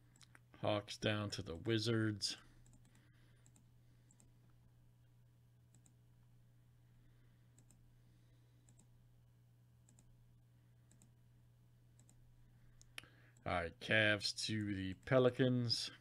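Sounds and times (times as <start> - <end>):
low steady hum: 0.0 - 16.0
computer mouse clicks: 2.6 - 4.3, 5.7 - 6.0, 7.5 - 7.8, 8.6 - 8.9, 9.8 - 10.1, 10.9 - 11.2, 12.0 - 12.2.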